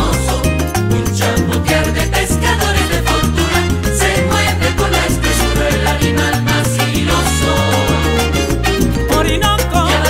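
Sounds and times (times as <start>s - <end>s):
bass line: 0.0s - 10.0s
latin band instrumental: 0.0s - 10.0s
rhythmic percussion: 0.0s - 10.0s.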